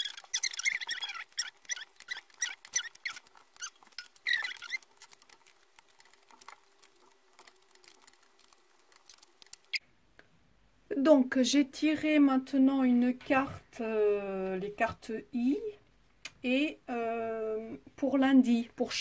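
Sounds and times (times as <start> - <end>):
cards tapping and scraping: 0.0 - 9.8.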